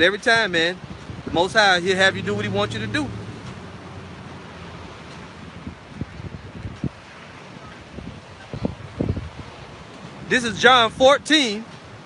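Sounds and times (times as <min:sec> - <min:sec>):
wind blowing on microphone: 0:00.0 - 0:12.0.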